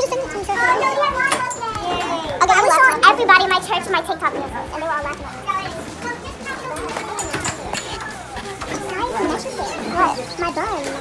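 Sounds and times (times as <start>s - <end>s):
young voices chattering: 0.0s - 11.0s.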